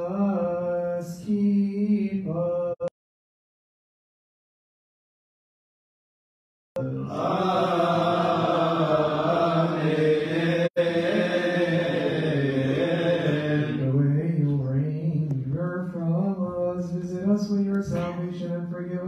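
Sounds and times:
voices chanting a hymn: 6.8 - 15.1.

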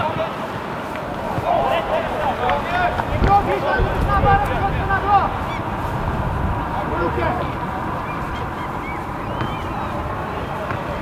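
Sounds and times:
steady background noise: 0.0 - 11.0
geese honking: 1.0 - 11.0.

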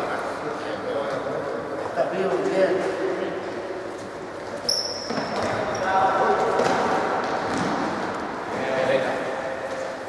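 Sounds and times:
ball thuds on hard court: 6.6 - 8.0.

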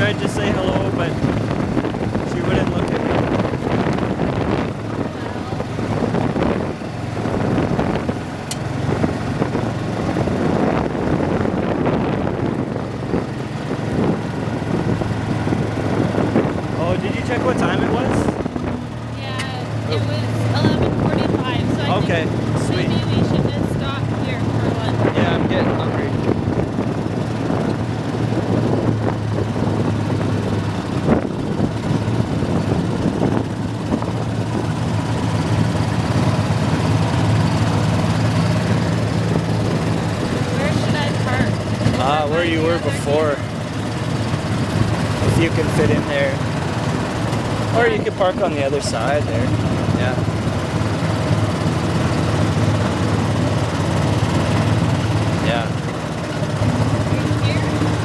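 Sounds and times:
tyres on gravel road: 0.0 - 58.0
vehicle engine running: 0.0 - 58.0.

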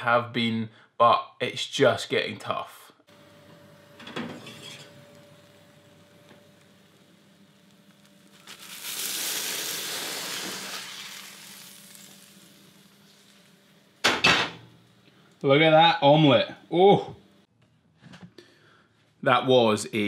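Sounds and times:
faint steady hum: 3.1 - 8.7
omelette sizzling in pan: 3.2 - 14.1.

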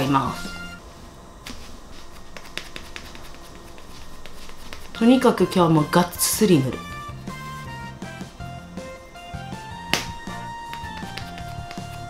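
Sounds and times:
makeup puff patting skin: 1.4 - 5.5, 9.6 - 12.0.

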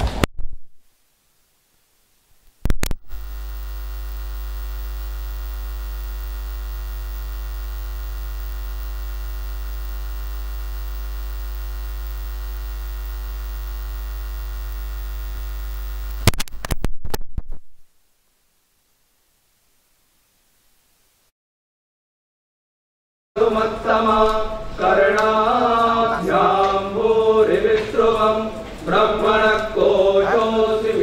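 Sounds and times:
electrical mains hum: 0.0 - 21.3
crackling clicks: 2.4 - 17.8.

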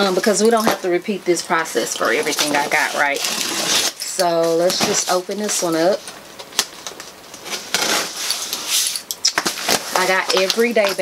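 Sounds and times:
cardboard rustling and scraping: 2.1 - 6.0, 7.4 - 11.0.

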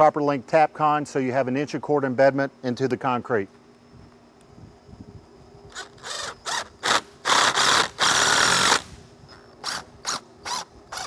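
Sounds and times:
impact driver driving screw: 5.7 - 8.9.

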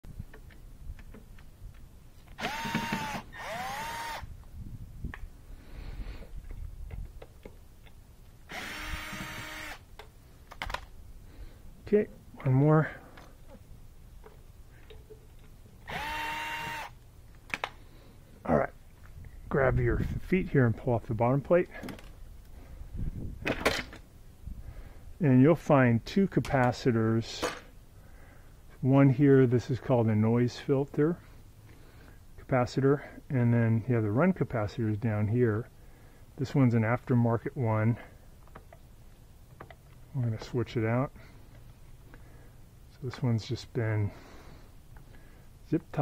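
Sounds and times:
clicks of drill bit and screws: 2.3 - 4.2, 8.5 - 10.8
cordless drill spinning: 2.4 - 4.3, 8.5 - 9.8, 15.8 - 17.0.

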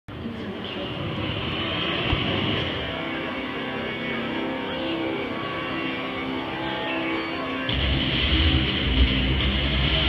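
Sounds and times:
music over speakers: 0.1 - 10.0
dense rumble over speakers: 7.7 - 10.0.

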